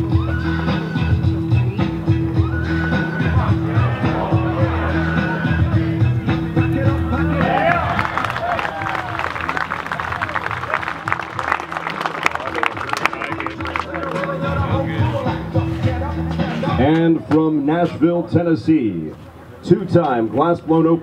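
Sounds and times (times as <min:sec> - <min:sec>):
music with steady bass line: 0:00.0 - 0:17.2
spectators clapping: 0:06.6 - 0:14.8.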